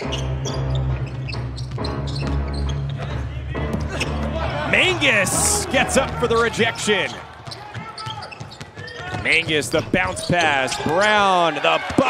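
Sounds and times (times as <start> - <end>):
arena music with heavy bass: 0.3 - 6.9.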